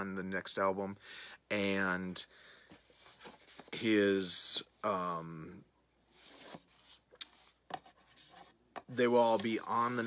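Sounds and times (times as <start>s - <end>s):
light rubbing and scratching: 6.1s - 10.0s.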